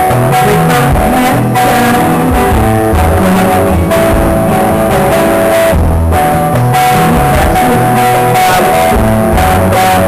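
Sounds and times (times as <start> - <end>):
bass guitar: 0.0 - 10.0
electric guitar: 0.0 - 10.0.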